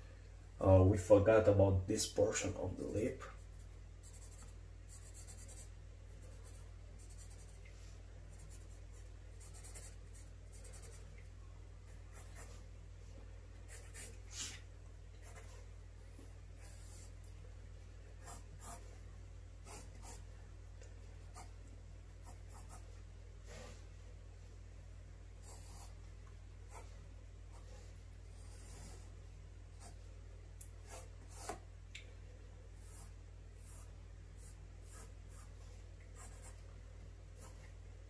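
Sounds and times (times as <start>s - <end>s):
faint low hum: 0.0s - 38.0s
pencil scratching on paper: 2.8s - 7.6s, 8.3s - 11.1s, 11.9s - 12.6s, 13.7s - 14.5s, 15.2s - 15.6s, 16.6s - 17.2s, 18.2s - 18.9s, 19.6s - 20.2s, 21.3s - 21.6s, 22.2s - 22.9s, 25.4s - 26.0s, 26.7s - 27.8s, 28.4s - 29.1s, 30.8s - 31.6s, 32.8s - 36.6s, 37.4s - 37.6s.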